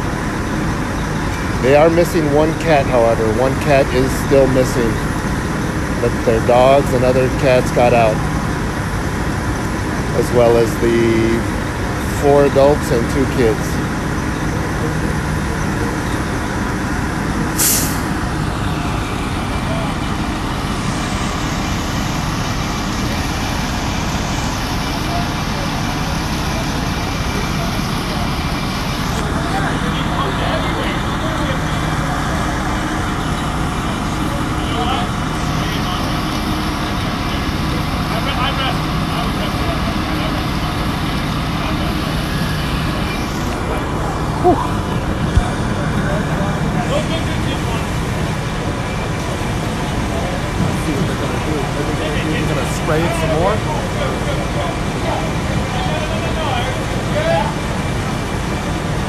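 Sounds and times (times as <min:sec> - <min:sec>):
fire engine low rumble: 0:00.0 - 0:59.0
short sharp hiss: 0:17.6 - 0:18.1.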